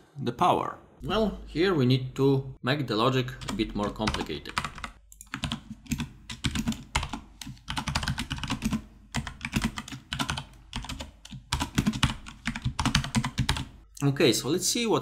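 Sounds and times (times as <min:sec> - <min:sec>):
typing on computer keyboard: 0:03.4 - 0:13.8.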